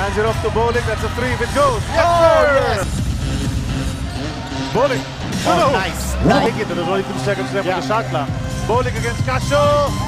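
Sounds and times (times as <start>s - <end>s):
crowd noise: 5.4s - 7.6s.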